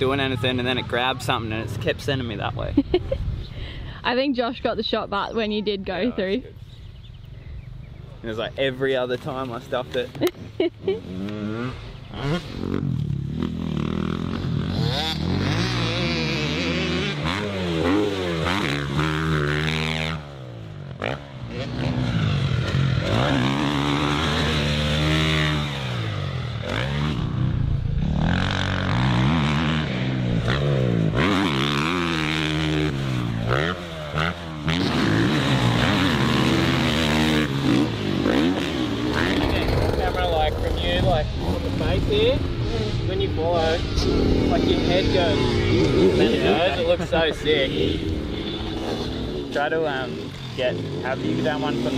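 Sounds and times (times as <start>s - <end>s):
dirt bike engines revving: 0.0s - 51.9s.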